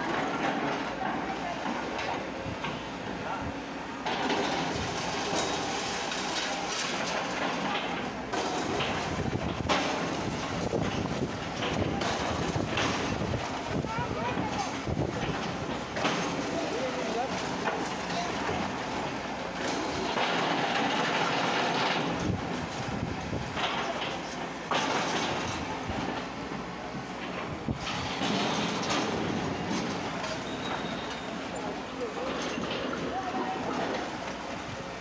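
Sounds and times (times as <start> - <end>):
excavator engine running: 0.0 - 35.0.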